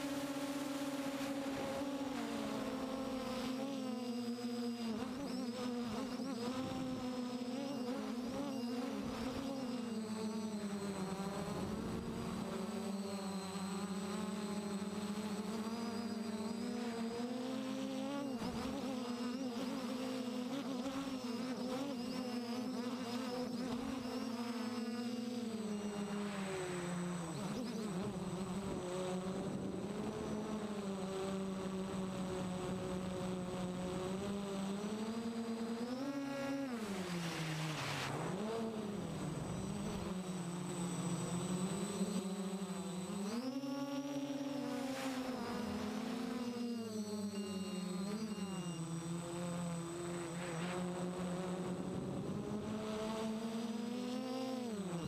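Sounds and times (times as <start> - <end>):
quadcopter propellers buzzing: 0.0 - 55.0.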